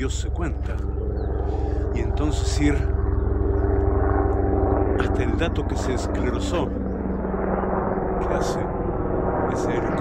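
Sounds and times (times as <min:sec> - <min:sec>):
helicopter engine drone: 0:00.0 - 0:10.0
rotor blades beating: 0:00.0 - 0:10.0.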